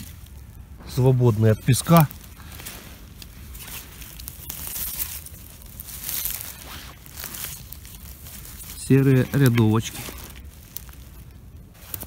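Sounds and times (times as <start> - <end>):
pine needles rustling and crunching: 0.0 - 12.0.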